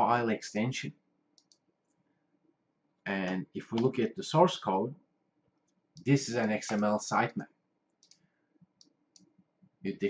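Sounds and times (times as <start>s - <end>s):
faint computer mouse clicks: 1.4s - 1.6s, 7.9s - 9.4s.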